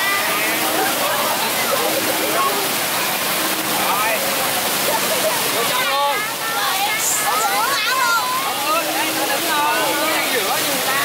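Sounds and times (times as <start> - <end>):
children and crowd chatter: 0.0 - 11.0
fountain water splashing: 0.0 - 11.0.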